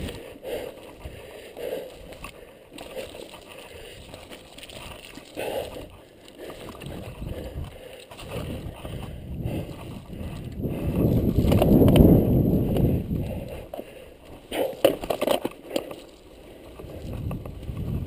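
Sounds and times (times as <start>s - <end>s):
bike tyres rolling over dirt: 0.0s - 18.0s.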